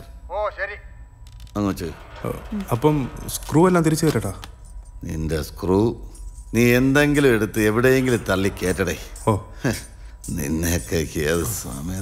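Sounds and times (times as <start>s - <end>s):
man speaking: 1.6s - 12.0s.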